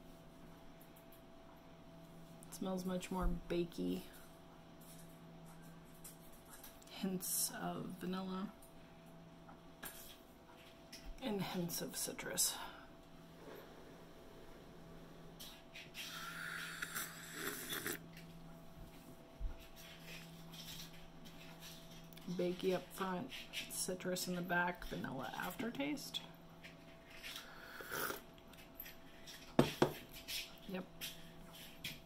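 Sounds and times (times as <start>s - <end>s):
person slurping hot tea: 16.0s - 18.0s, 27.4s - 28.2s
ceramic mug knocking on wooden table: 29.6s - 30.0s.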